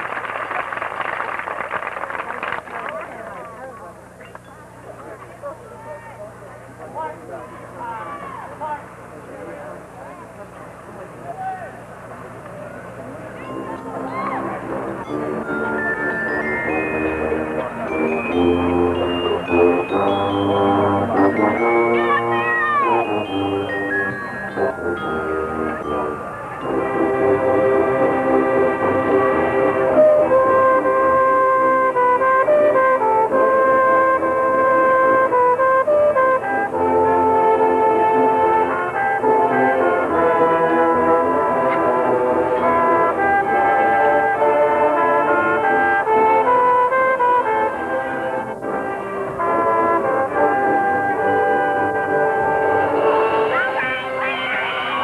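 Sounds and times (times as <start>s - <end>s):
marching band sustained chords: 2.6s - 55.0s
high note sliding down: 13.4s - 32.2s, 49.5s - 55.0s.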